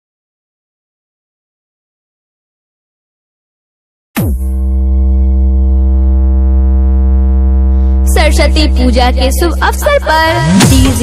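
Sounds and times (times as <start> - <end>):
electronic bass drone: 4.2 - 11.0.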